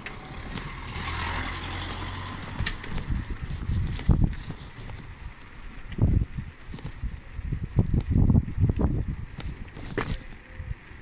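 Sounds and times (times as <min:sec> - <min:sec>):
motor vehicle passing: 0:00.0 - 0:05.6.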